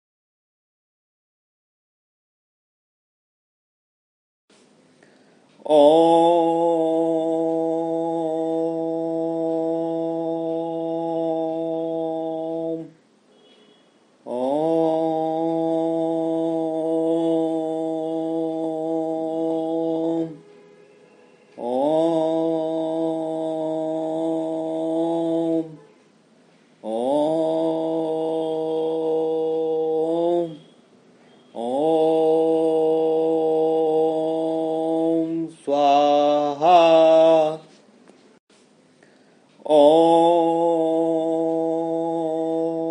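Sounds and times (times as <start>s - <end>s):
person chanting om: 5.6s - 13.0s, 13.8s - 26.1s, 26.8s - 37.7s, 39.6s - 42.9s.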